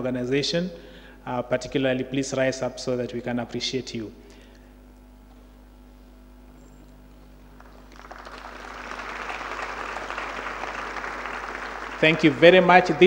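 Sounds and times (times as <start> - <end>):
faint low hum: 0.0 - 13.0
audience applauding: 7.6 - 13.0.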